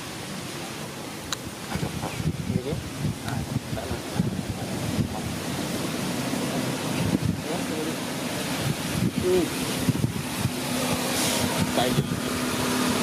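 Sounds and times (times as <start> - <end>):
wind rumbling on microphone: 1.2 - 13.0.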